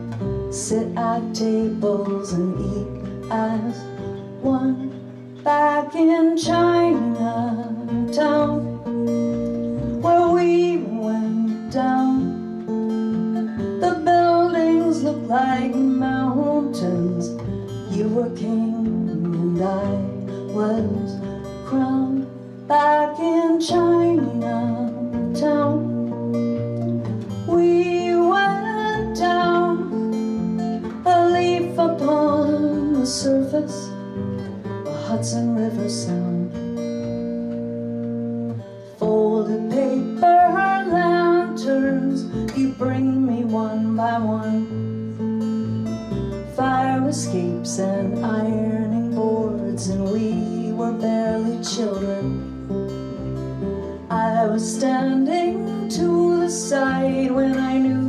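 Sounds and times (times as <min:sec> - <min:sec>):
acoustic guitar strumming: 0:00.0 - 0:58.0
upright bass: 0:00.0 - 0:58.0.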